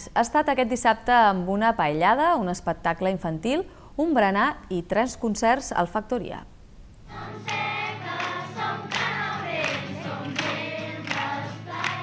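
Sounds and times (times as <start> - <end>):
children singing in chorus: 7.1 - 12.0.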